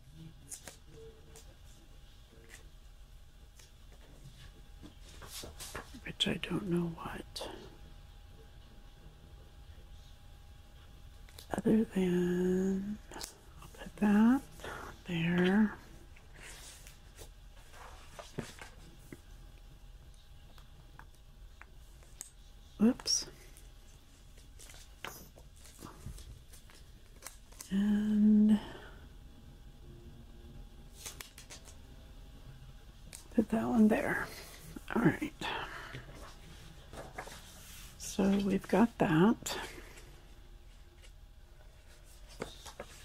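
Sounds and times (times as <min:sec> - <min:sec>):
woman speaking indistinctly: 0:06.0 - 0:07.7, 0:11.4 - 0:16.0, 0:22.8 - 0:23.5, 0:27.7 - 0:29.0, 0:33.3 - 0:36.3, 0:38.0 - 0:40.0.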